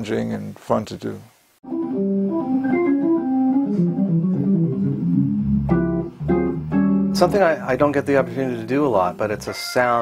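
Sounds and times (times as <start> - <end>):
organ playing jazz: 1.6 - 10.0.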